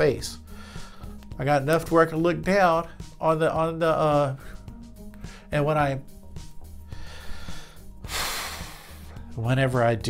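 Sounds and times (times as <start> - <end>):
background music: 0.0 - 10.0
sharp noisy breath: 6.9 - 9.2.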